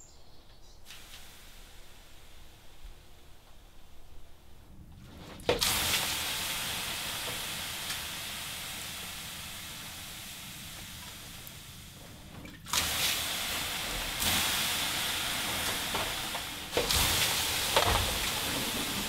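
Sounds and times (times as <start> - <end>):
steam hissing off hot stones: 0.8 - 4.4, 5.3 - 19.0.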